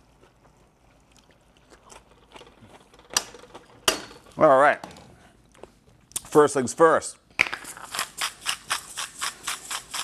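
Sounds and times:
pepper grinder ratcheting: 0:07.7 - 0:10.0.

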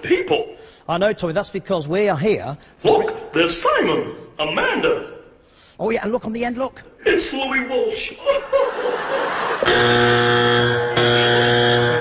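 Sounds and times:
loud harsh buzzer: 0:09.6 - 0:12.0.

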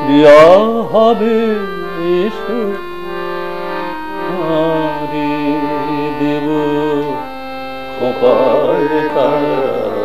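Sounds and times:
harmonium chord: 0:00.0 - 0:10.0
man singing held notes: 0:04.2 - 0:07.2, 0:08.0 - 0:10.0.

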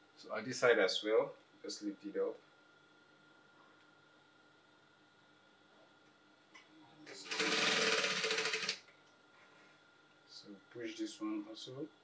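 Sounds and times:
sewing machine stitching: 0:07.2 - 0:08.8.

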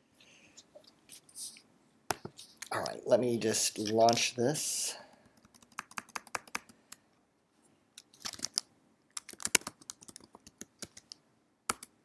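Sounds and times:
typing on computer keyboard: 0:05.3 - 0:06.8, 0:08.2 - 0:11.9.

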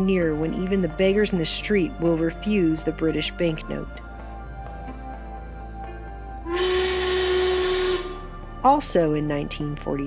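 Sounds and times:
steam whistle blast: 0:06.4 - 0:08.2.

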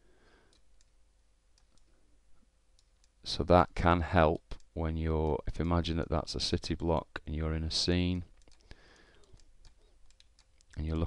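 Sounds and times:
computer mouse clicks: 0:00.5 - 0:01.0, 0:01.6 - 0:01.9, 0:08.3 - 0:11.0.

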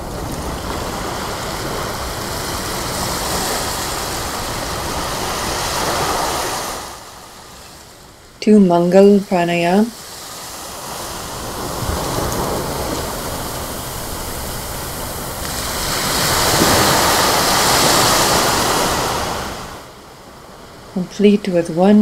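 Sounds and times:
ocean surf washing: 0:00.0 - 0:22.0.

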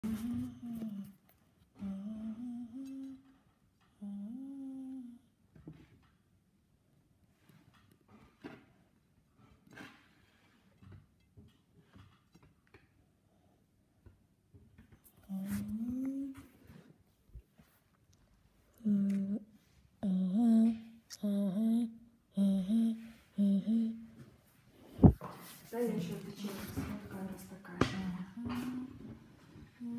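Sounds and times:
person humming: 0:00.0 - 0:01.2, 0:01.8 - 0:03.4, 0:04.0 - 0:05.3, 0:15.2 - 0:16.5, 0:18.8 - 0:24.2.

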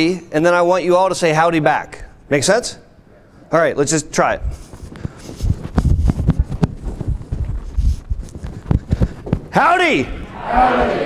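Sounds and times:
footsteps on hollow stage: 0:04.4 - 0:11.0.

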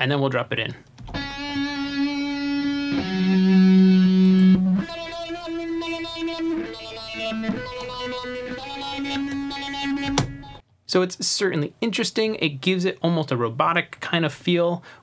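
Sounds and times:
filtered electric guitar notes: 0:01.0 - 0:10.6.

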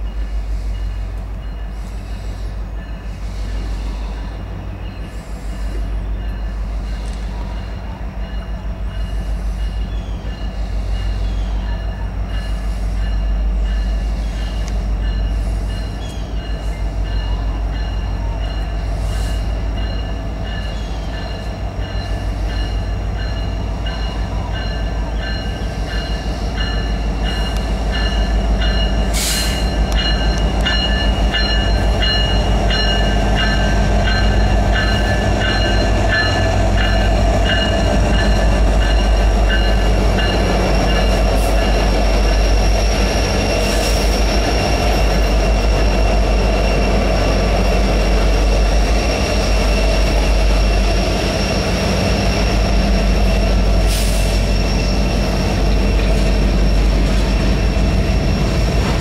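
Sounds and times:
diesel locomotive engines rumbling: 0:00.0 - 0:59.0
wheel squeal: 0:39.6 - 0:59.0.

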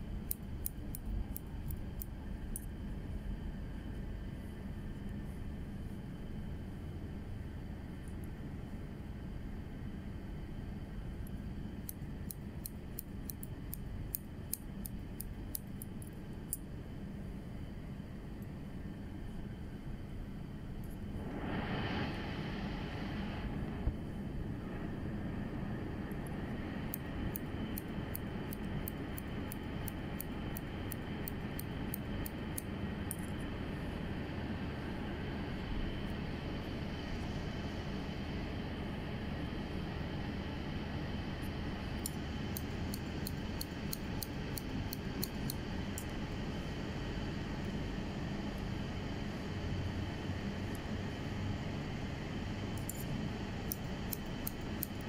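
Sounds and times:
steady background hum: 0:00.0 - 0:55.0
scissors snipping: 0:00.2 - 0:02.7, 0:42.0 - 0:46.1, 0:53.7 - 0:55.0.

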